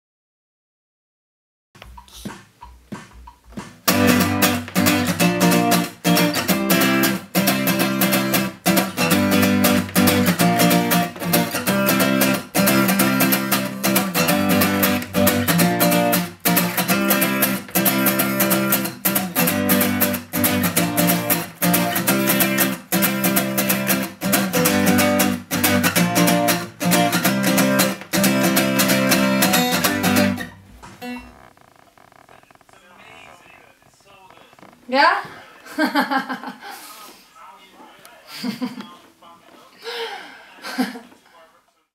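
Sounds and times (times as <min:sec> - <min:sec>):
acoustic guitar strumming: 0:01.9 - 0:31.5.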